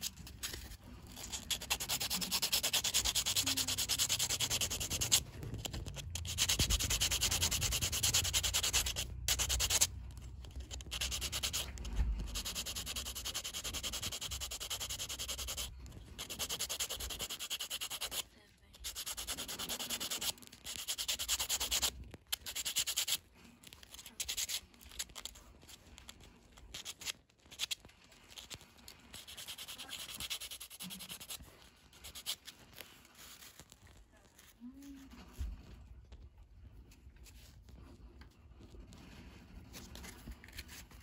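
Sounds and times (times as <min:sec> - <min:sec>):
ivory filed on abrasive: 0:00.0 - 0:09.9, 0:10.7 - 0:18.2, 0:18.8 - 0:23.2, 0:26.7 - 0:31.4.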